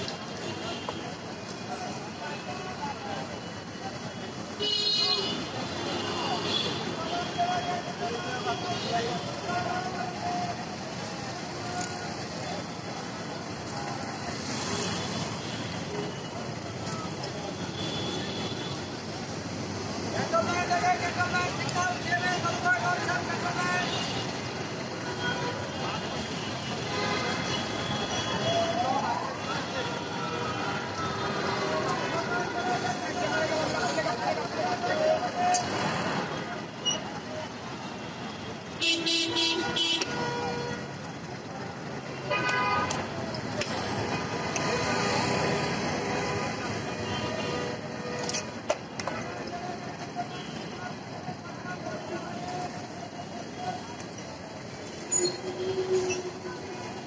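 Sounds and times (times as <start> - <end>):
busy street traffic: 0.0 - 57.0
indistinct voices of passers-by: 0.0 - 57.0
rumble of vehicles: 0.0 - 57.0
vehicle horns honking: 4.6 - 7.9, 38.8 - 40.9, 42.2 - 43.0.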